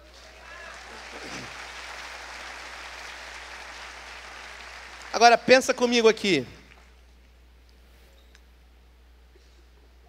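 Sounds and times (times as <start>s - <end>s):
congregation applauding: 0.0s - 7.0s.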